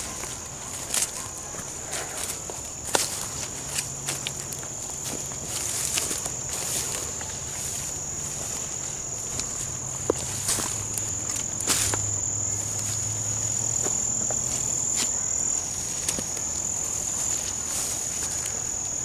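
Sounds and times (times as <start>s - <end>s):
footsteps through undergrowth: 0.0s - 19.0s
high-pitched insect trill: 0.0s - 19.0s.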